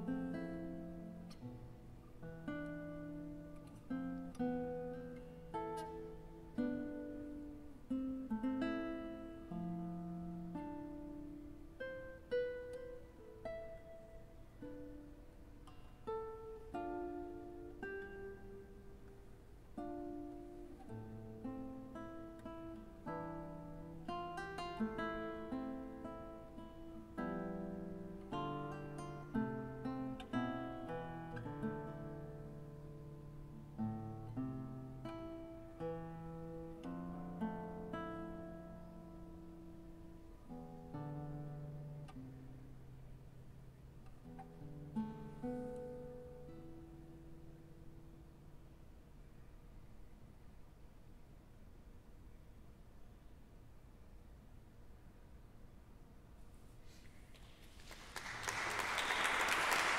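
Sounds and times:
classical guitar fingerstyle: 0.0s - 57.8s.

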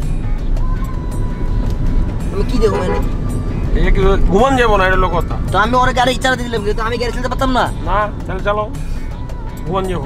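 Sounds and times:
background music: 0.0s - 10.0s
car road and engine rumble: 0.0s - 10.0s.

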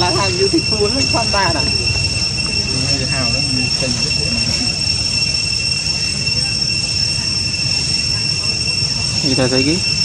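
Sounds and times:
cicadas droning: 0.0s - 10.0s.

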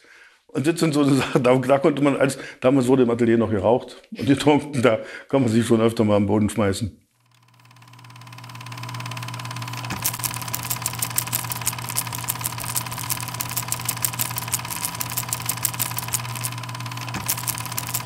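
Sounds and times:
machine humming: 7.2s - 18.0s
fast even clicking: 7.3s - 18.0s.

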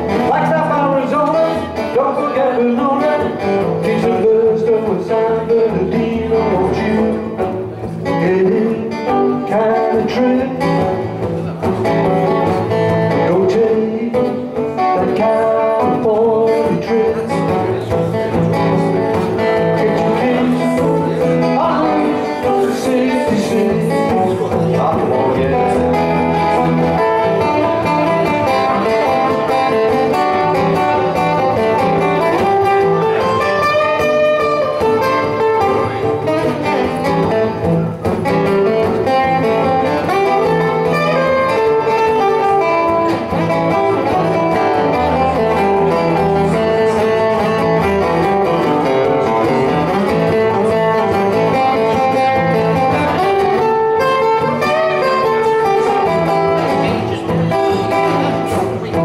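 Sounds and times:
two acoustic guitars playing: 0.0s - 59.0s.

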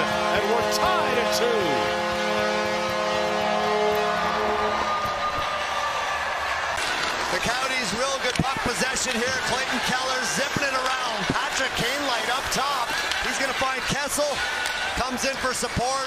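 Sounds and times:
arena goal horn: 0.0s - 5.5s
crowd cheering: 0.0s - 16.0s.

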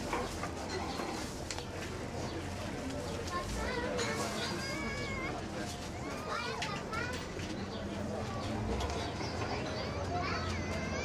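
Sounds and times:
indistinct chatter of voices: 0.0s - 11.0s
low room murmur: 0.0s - 11.0s.

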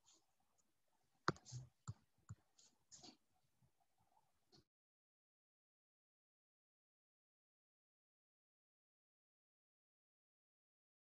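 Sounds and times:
computer mouse clicks: 1.3s - 2.4s.

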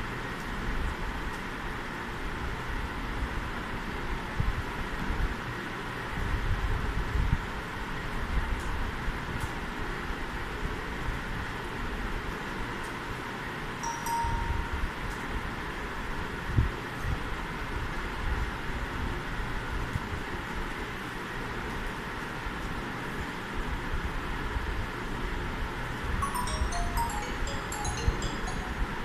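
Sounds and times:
short chime-like tone: 13.8s - 15.3s, 26.2s - 29.0s.

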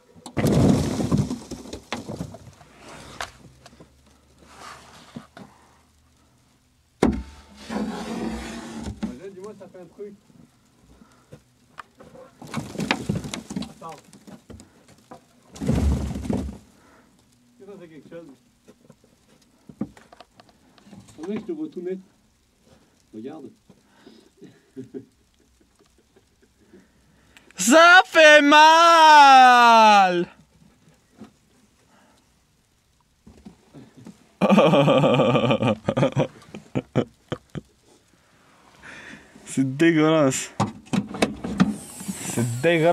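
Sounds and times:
faint rustles and knocks: 1.0s - 6.3s, 7.1s - 23.9s, 30.4s - 32.3s, 32.9s - 34.4s
snow brush scraping window: 7.5s - 8.9s, 41.7s - 42.9s
man yelling loudly: 27.6s - 30.4s.

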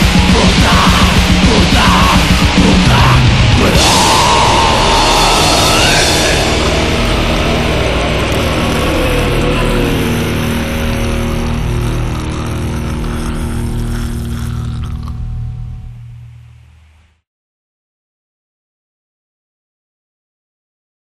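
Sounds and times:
black metal music: 0.0s - 17.1s.

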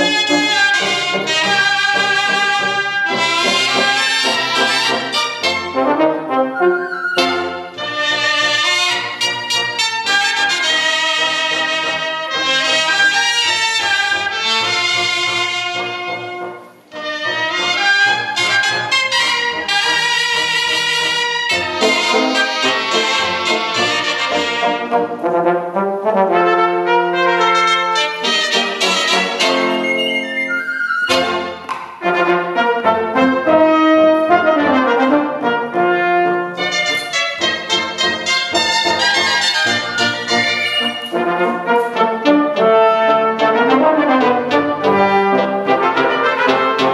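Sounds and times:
brass: 0.0s - 46.9s
wind band playing live: 0.0s - 46.9s.

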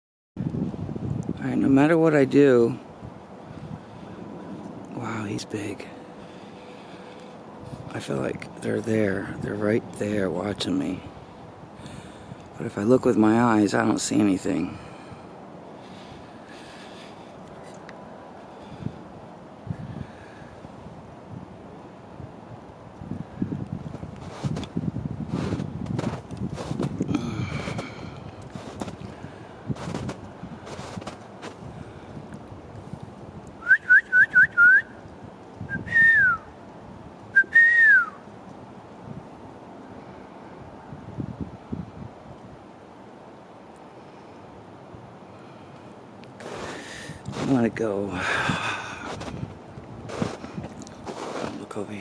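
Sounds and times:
crunching in snow: 24.2s - 24.7s, 25.3s - 29.1s, 29.8s - 31.6s, 46.4s - 47.8s, 48.4s - 51.9s
loud whistled notes: 37.4s - 38.2s.

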